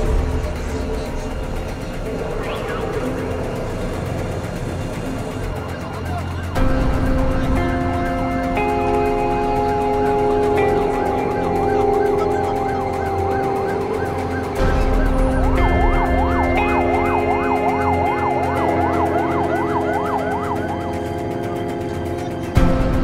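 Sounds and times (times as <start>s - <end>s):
emergency siren yelping: 8.6s - 22.5s.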